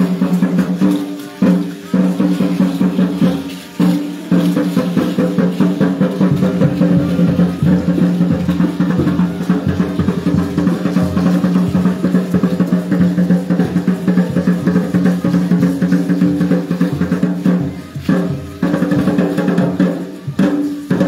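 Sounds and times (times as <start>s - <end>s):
drums playing fast beat: 0.0s - 21.0s.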